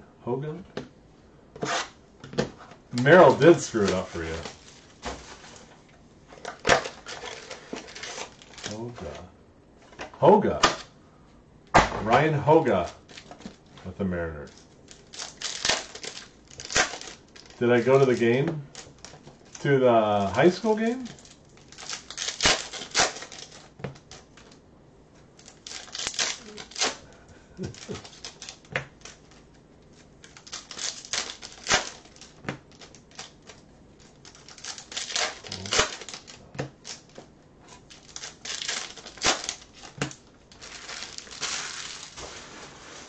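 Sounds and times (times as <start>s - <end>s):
wrappers crinkling: 2.9s - 5.8s, 6.4s - 9.1s, 14.4s - 24.6s, 25.3s - 43.0s.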